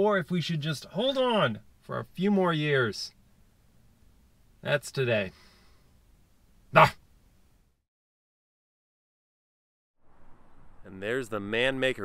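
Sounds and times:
man exclaiming: 0:06.7 - 0:07.0.

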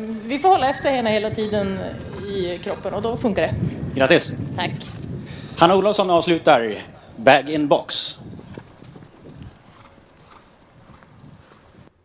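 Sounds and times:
faint hoofbeats on dirt: 0:08.0 - 0:12.0.

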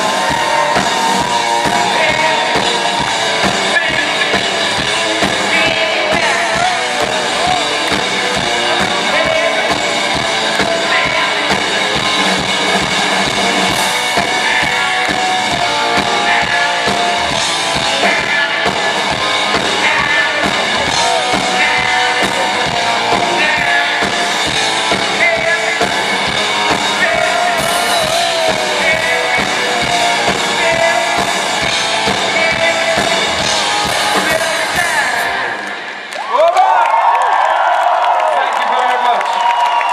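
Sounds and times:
person singing: 0:00.0 - 0:12.4, 0:13.0 - 0:35.8
drum kit beating: 0:00.0 - 0:36.1
live rock band playing: 0:00.0 - 0:36.2.

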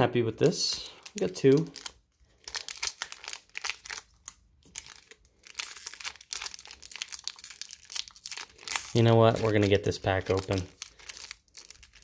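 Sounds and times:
foil wrapper crinkling: 0:00.4 - 0:12.0.

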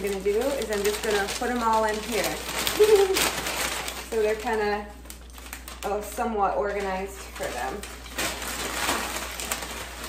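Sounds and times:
paper bag rustling and crinkling: 0:00.0 - 0:10.0.

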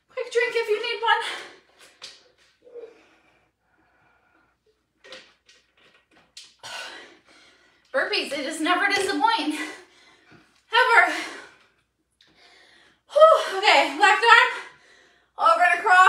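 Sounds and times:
woman's voice: 0:00.2 - 0:01.5, 0:08.0 - 0:09.8, 0:10.7 - 0:11.4, 0:13.1 - 0:14.7, 0:15.4 - 0:16.0
person breathing: 0:09.8 - 0:10.6, 0:12.3 - 0:13.0, 0:14.7 - 0:15.4.

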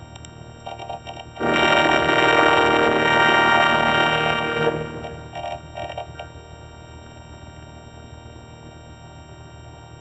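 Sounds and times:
faint electronic hum: 0:00.0 - 0:10.0
thin high whine: 0:00.6 - 0:08.5
stuttering synthesized blips: 0:01.4 - 0:06.4.

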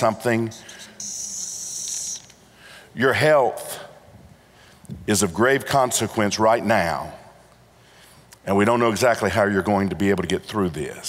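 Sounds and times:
marker stroke on paper: 0:00.5 - 0:02.3.

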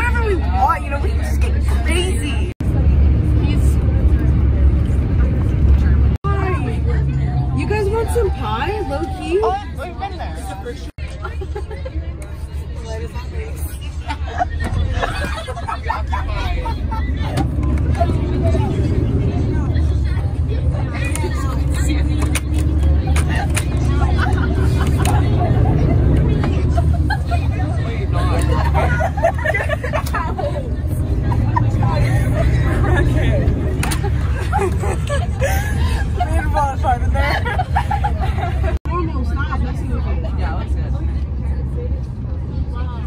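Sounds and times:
bus engine and road rumble: 0:00.0 - 0:43.0
teenagers chattering and laughing: 0:00.0 - 0:43.0.

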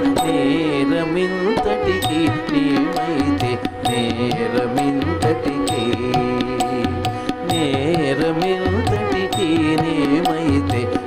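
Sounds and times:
violin melody: 0:00.0 - 0:11.0.

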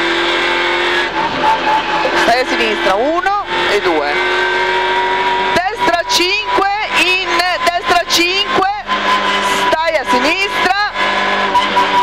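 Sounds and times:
car engine at high revs: 0:00.0 - 0:12.0
person calling over engine: 0:05.5 - 0:11.0.

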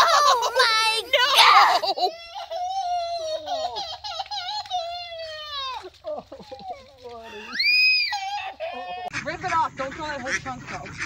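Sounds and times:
toddler crying: 0:00.0 - 0:09.1.

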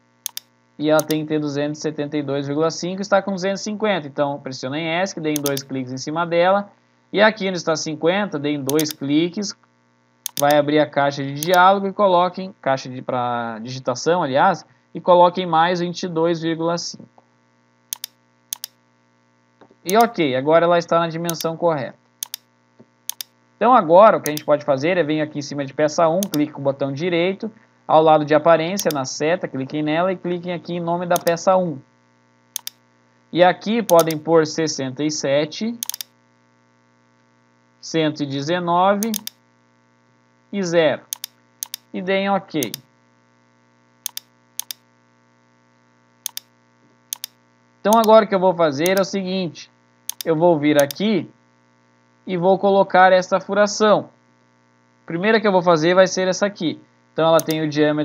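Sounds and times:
faint electrical hum: 0:00.0 - 0:58.0
computer mouse double clicks: 0:00.3 - 0:01.2, 0:05.4 - 0:05.7, 0:08.7 - 0:09.0, 0:10.3 - 0:10.6, 0:11.4 - 0:11.6, 0:17.9 - 0:18.8, 0:19.9 - 0:20.2, 0:21.3 - 0:21.5, 0:22.2 - 0:22.5, 0:23.1 - 0:23.3, 0:24.3 - 0:24.5, 0:26.2 - 0:26.4, 0:28.8 - 0:29.0, 0:31.2 - 0:31.4, 0:32.6 - 0:32.8, 0:33.9 - 0:34.2, 0:35.8 - 0:36.1, 0:39.0 - 0:39.4, 0:41.1 - 0:41.9, 0:42.6 - 0:42.8, 0:44.1 - 0:44.8, 0:46.3 - 0:46.5, 0:47.1 - 0:48.1, 0:48.9 - 0:49.1, 0:50.1 - 0:51.0, 0:57.4 - 0:57.6.

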